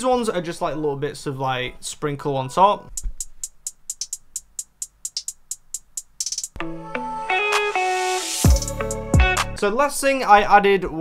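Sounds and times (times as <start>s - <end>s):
drum machine beat: 2.9s - 6.8s, 7.5s - 9.6s
drum machine hi-hats: 2.9s - 6.8s, 7.5s - 9.6s.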